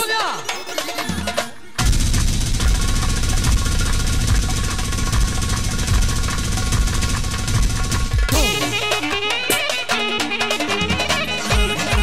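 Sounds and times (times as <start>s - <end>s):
heavy drums: 1.8s - 12.0s
live band music: 8.2s - 12.0s.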